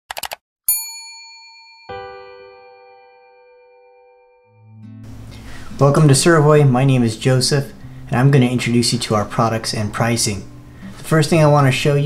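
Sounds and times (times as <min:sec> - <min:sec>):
quick clicks: 0:00.1 - 0:00.4
desk bell ding: 0:00.7 - 0:04.8
sustained musical chord: 0:02.0 - 0:09.0.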